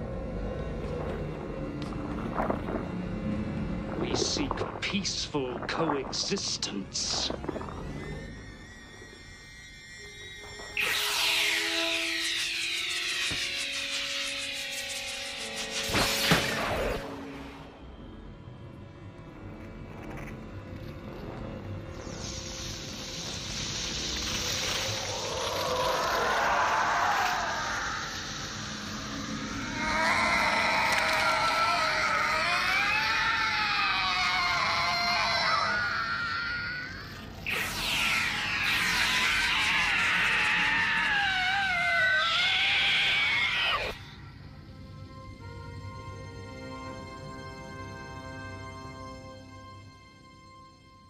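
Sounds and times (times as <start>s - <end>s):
film music score: 0.0s - 51.0s
hissing energy beam: 10.8s - 17.2s, 21.9s - 31.6s, 36.8s - 41.8s
creature warbling shrieks: 23.6s - 44.2s.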